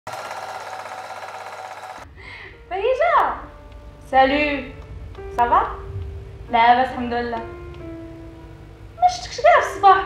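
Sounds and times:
film projector clatter: 0:00.1 - 0:02.0.

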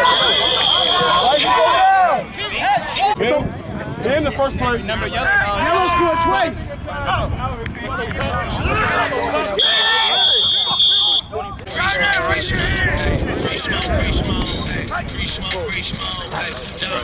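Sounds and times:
referee's whistle: 0:00.0 - 0:01.7, 0:09.6 - 0:11.4
people shouting: 0:00.0 - 0:03.1, 0:08.6 - 0:14.1.

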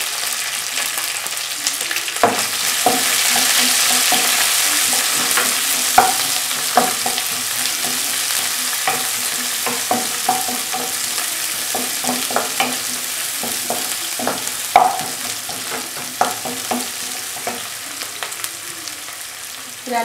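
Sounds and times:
food sizzling in oil: 0:00.0 - 0:20.0
wooden spatula scraping a pan: 0:02.3 - 0:17.8.

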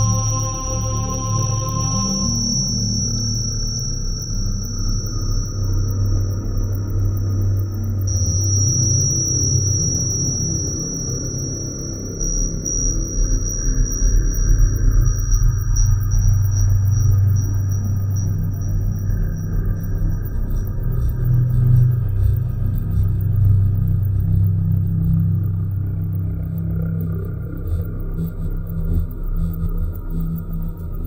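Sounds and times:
fine electronic ticking: 0:00.0 - 0:31.0
pulsing synth bass: 0:15.0 - 0:31.0.

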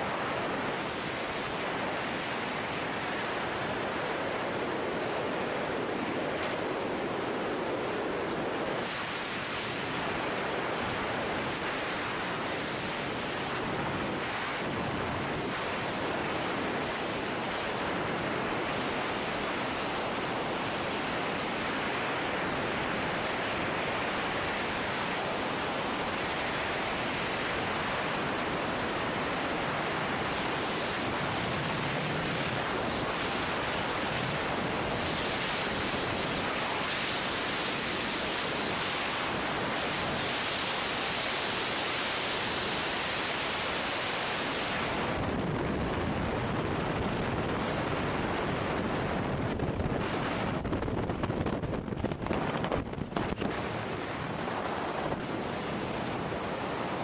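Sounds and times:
wind buffeting microphone: 0:44.7 - 0:56.5.

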